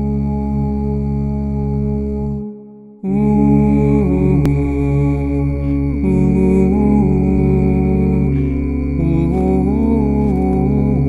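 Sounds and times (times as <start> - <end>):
low steady drone: 0.0 - 11.0
wordless voices holding notes: 0.0 - 11.0.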